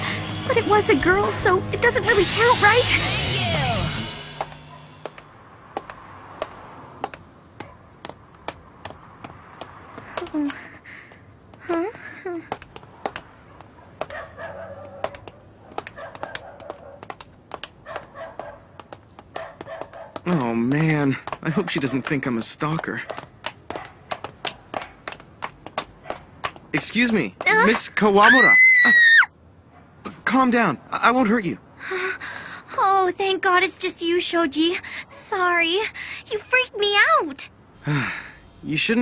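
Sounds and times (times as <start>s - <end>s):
hard-soled footsteps on pavement: 4.2s - 28.6s.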